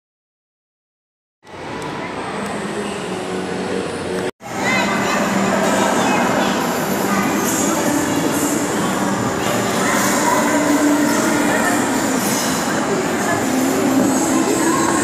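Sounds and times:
indistinct voices: 0:01.5 - 0:15.0.

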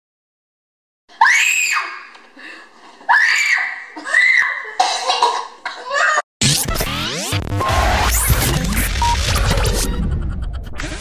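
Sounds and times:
child screaming: 0:01.2 - 0:02.1, 0:03.1 - 0:04.8, 0:05.9 - 0:06.3
child coughing: 0:04.8 - 0:06.0
loud intro music: 0:06.4 - 0:11.0.

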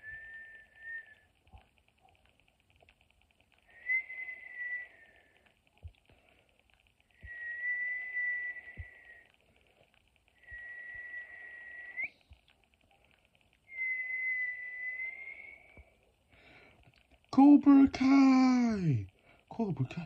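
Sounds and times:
person whistling: 0:00.0 - 0:01.3, 0:03.7 - 0:05.2, 0:07.2 - 0:09.3, 0:10.4 - 0:12.3, 0:13.7 - 0:15.8.

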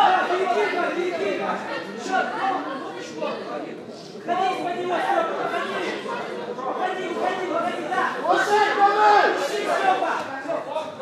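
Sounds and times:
overlapping chatter of people: 0:00.0 - 0:11.0.

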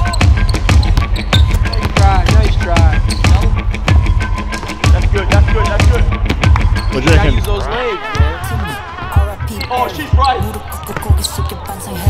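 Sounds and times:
music with heavy bass beat: 0:00.0 - 0:07.4, 0:08.1 - 0:12.0.

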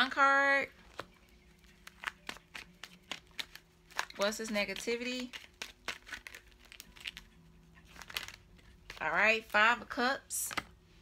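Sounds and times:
cards being shuffled: 0:00.8 - 0:09.5, 0:10.4 - 0:10.8
clicks and snaps of card edges: 0:01.8 - 0:07.2, 0:10.4 - 0:10.7.

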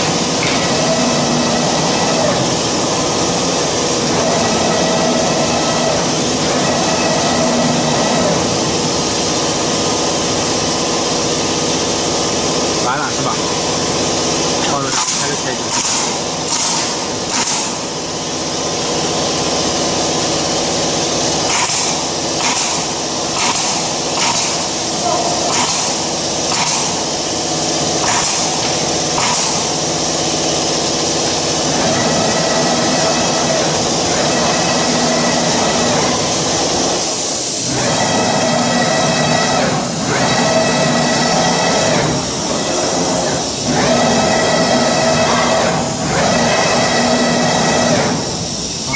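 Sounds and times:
axis drives whining: 0:00.0 - 0:48.9
machine hiss and hum: 0:00.0 - 0:48.9.

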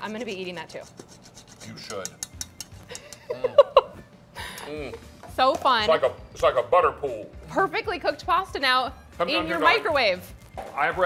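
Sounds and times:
metal fork clicking on ceramic bowl: 0:01.8 - 0:03.3.

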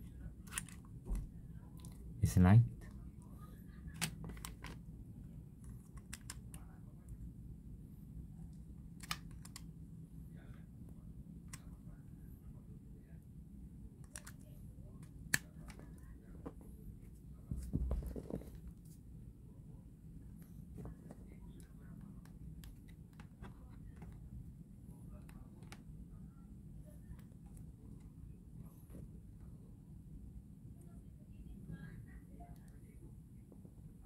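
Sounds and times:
plastic handling clicks: 0:05.8 - 0:06.6, 0:09.0 - 0:09.7.

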